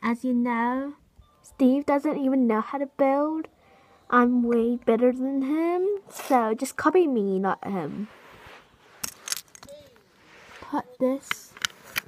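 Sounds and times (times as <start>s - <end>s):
plastic bricks clattering: 9.0s - 9.8s.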